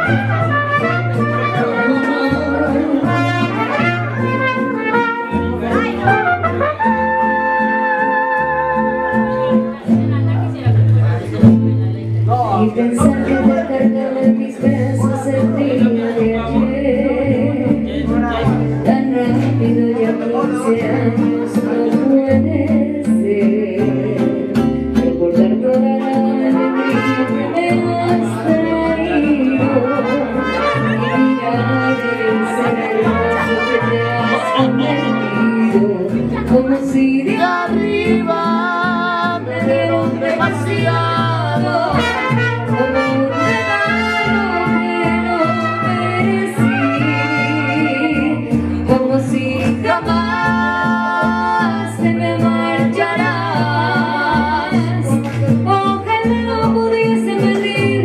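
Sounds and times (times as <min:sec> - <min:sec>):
mariachi band with trumpets: 0:00.0 - 0:58.0
people singing: 0:25.4 - 0:58.0.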